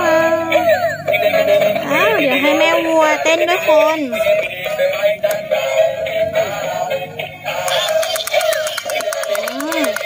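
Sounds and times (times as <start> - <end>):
electronic children's songs: 0.0 - 10.0
fast even clicking beat: 7.6 - 10.0.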